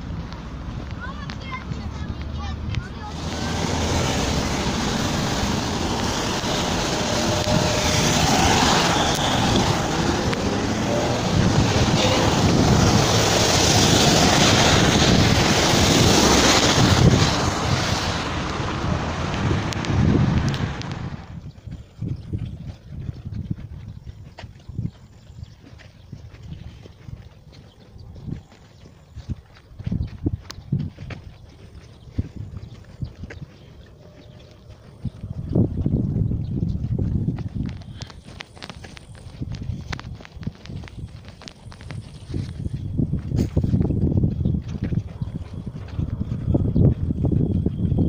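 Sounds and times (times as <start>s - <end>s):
car tyres hissing on wet road: 3.1s - 21.3s.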